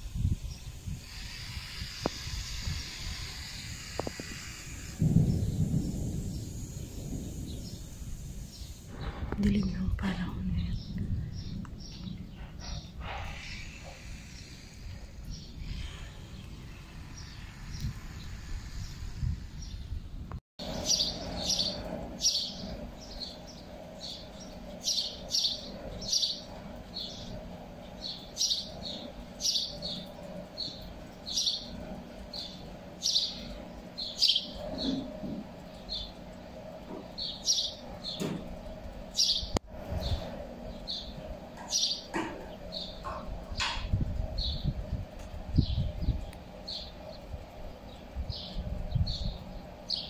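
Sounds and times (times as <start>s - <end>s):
steady low hum: 0.0s - 50.0s
birds chirping: 2.1s - 50.0s.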